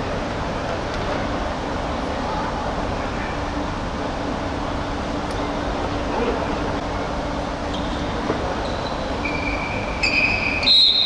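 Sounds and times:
sports hall noise: 0.0s - 11.0s
referee's whistle: 8.6s - 11.0s.

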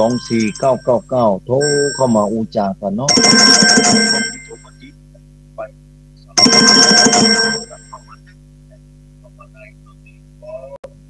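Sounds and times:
telephone ringing: 0.0s - 1.0s, 1.6s - 2.4s, 3.1s - 4.8s, 6.4s - 8.0s
low steady hum: 0.0s - 11.0s.

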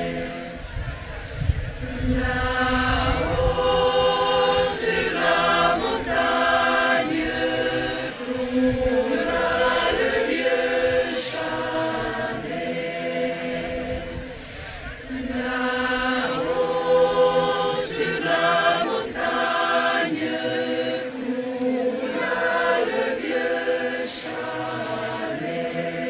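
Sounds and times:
choir singing: 0.0s - 26.0s.

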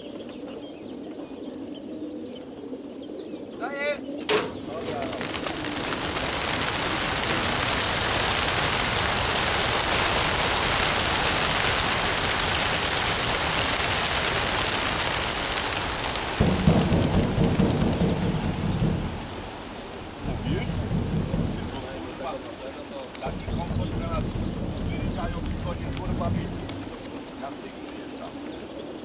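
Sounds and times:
low uneven noise: 4.2s - 29.0s
pigeon wings flapping: 4.2s - 29.0s.

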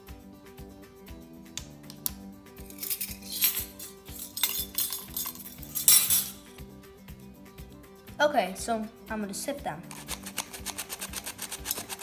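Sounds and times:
music with steady beat: 0.0s - 8.2s
metal sifter clinking and scraping: 2.7s - 6.5s, 9.9s - 12.0s.

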